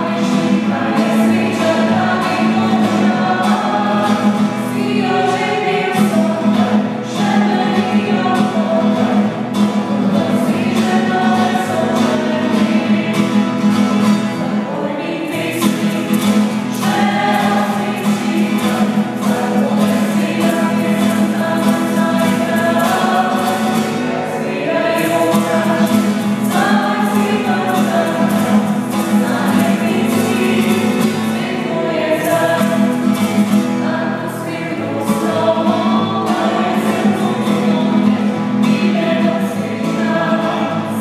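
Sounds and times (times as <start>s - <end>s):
group of voices singing: 0.0s - 41.0s
strummed acoustic guitar: 0.0s - 41.0s.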